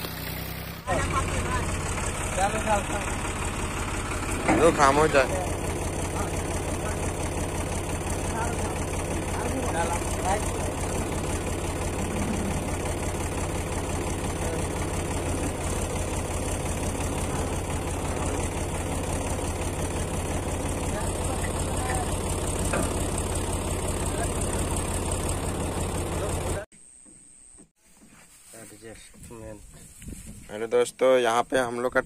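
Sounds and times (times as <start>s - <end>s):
tractor diesel engine idling: 0.0s - 26.7s.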